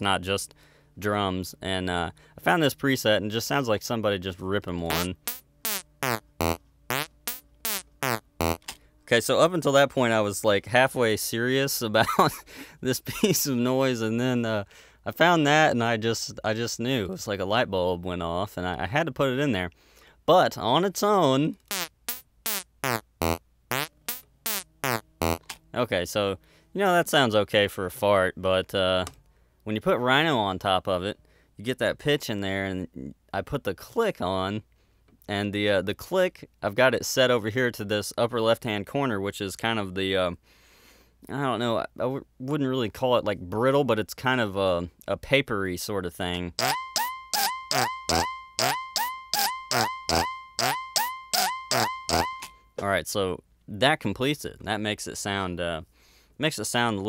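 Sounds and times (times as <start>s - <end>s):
synthesizer fart-like notes: 4.9s - 8.7s, 21.7s - 25.5s, 46.6s - 52.5s.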